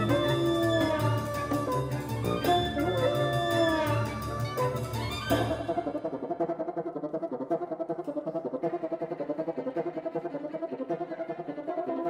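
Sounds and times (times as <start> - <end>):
chamber ensemble music: 0.0 - 6.6.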